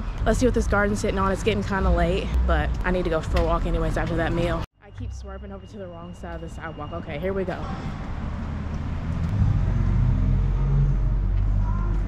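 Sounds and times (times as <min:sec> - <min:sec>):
vehicle engine rumble: 0:00.0 - 0:12.0.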